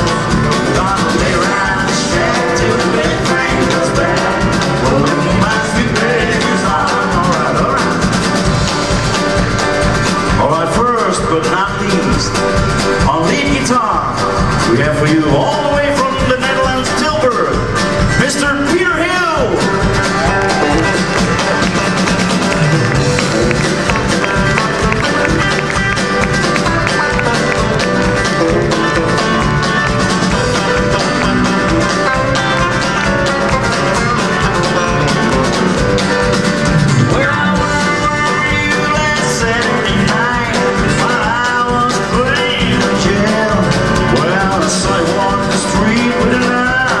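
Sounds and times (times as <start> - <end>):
country band playing live: 0.0 - 47.0
electric guitar lead: 19.4 - 41.5.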